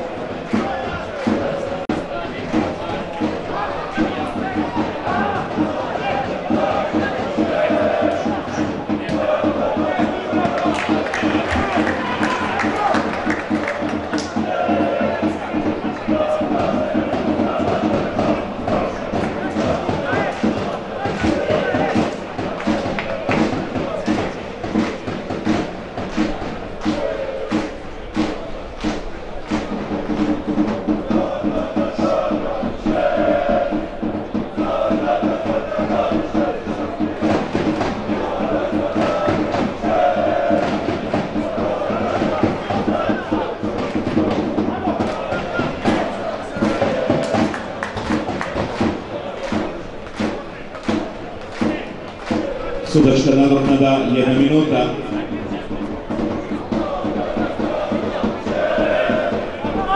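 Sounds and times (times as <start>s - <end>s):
crowd chanting and singing: 0.0s - 59.9s
steady drum thumps: 0.0s - 59.9s.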